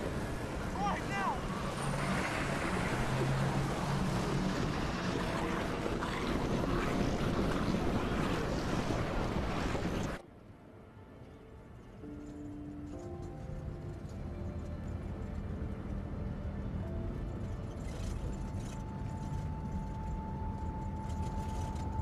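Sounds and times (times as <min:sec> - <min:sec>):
low engine drone: 0:00.0 - 0:10.2, 0:13.0 - 0:22.0.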